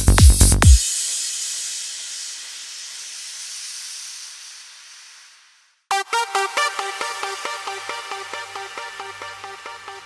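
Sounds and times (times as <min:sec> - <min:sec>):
hissing synthesized white noise: 0:00.8 - 0:05.8.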